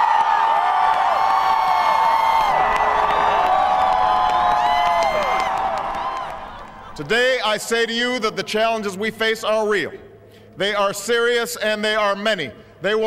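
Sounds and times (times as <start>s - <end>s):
crowd cheering and whooping: 0.0s - 7.1s.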